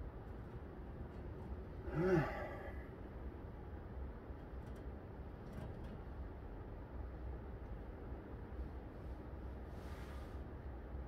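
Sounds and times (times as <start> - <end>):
low background hum: 0.0 - 11.0
man sighing with exertion: 1.8 - 2.9.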